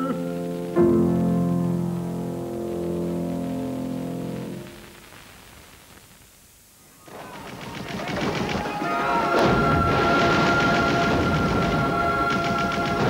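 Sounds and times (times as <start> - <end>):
gunfire and battle noise: 7.1 - 13.0.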